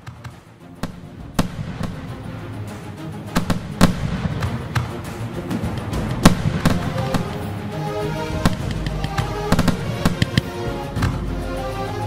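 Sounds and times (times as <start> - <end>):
music with held notes: 0.0 - 12.0
fireworks bangs: 0.8 - 2.1, 6.2 - 7.4, 8.4 - 10.5.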